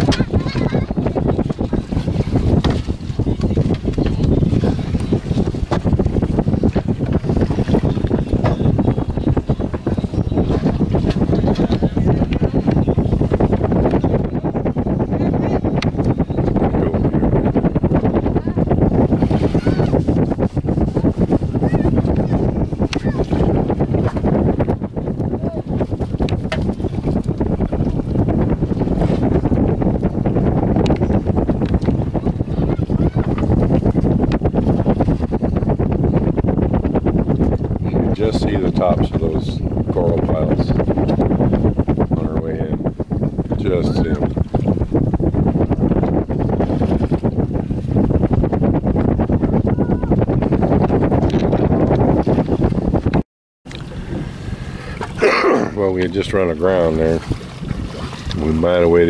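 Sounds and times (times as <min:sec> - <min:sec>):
wind on microphone: 0:00.0 - 0:59.0
small boat engine running: 0:53.7 - 0:59.0.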